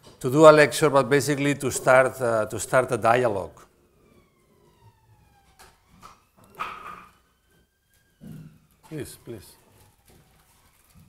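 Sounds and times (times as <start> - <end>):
faint siren wail: 0.2 - 11.0.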